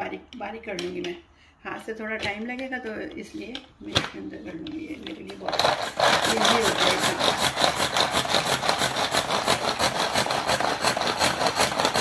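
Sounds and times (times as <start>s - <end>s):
garlic rattling in plastic bowl: 4.8s - 12.0s
string food chopper pulled: 5.4s - 12.0s.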